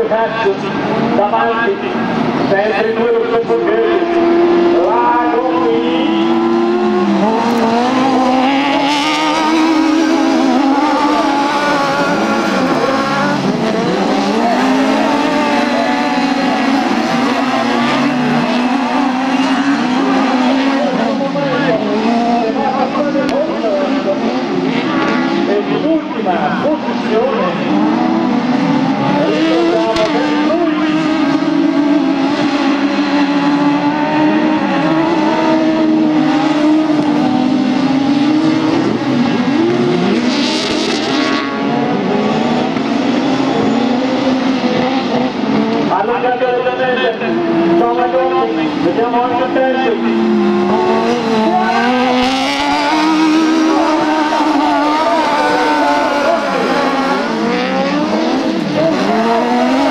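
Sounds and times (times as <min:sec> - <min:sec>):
racing engines revving: 0:00.0 - 0:59.9.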